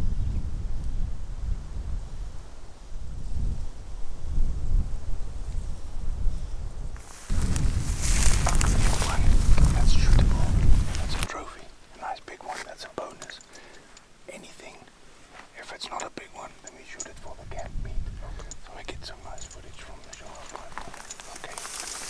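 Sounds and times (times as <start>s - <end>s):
wind buffeting microphone: 0.0s - 11.5s, 17.1s - 21.3s
men talking quietly: 8.4s - 14.9s, 15.5s - 22.0s.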